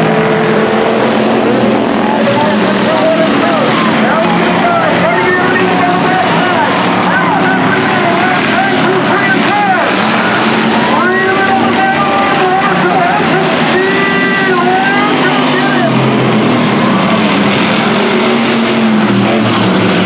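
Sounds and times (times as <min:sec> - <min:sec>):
race car engines running hard: 0:00.0 - 0:20.0.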